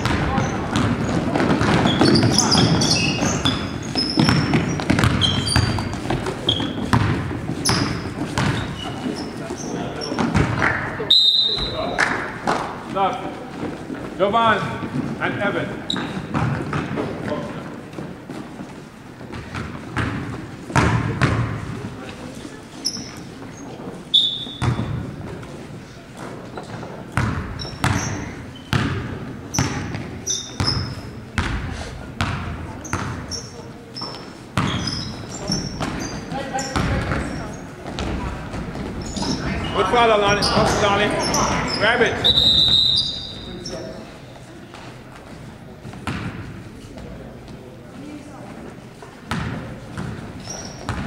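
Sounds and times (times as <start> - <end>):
basketball bouncing on hardwood: 0.0 - 8.9, 19.3 - 21.7, 27.2 - 30.8, 32.2 - 33.2, 35.5 - 39.1, 49.3 - 50.2
sneakers squeaking: 0.0 - 51.0.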